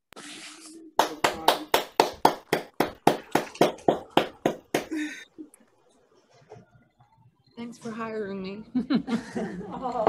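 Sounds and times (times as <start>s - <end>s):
person clapping steadily: 1.0s - 5.0s.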